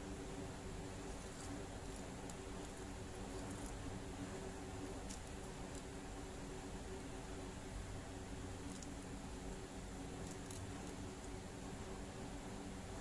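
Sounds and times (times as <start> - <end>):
faint steady hum: 0.0 - 13.0
crochet hook ticks and thread rustles: 1.0 - 4.0, 4.7 - 6.0, 8.6 - 9.0, 10.2 - 11.4.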